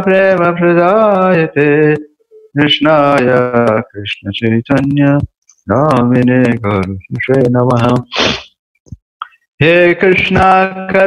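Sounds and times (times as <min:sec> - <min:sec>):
man chanting prayers: 0:02.6 - 0:08.1, 0:09.6 - 0:11.0.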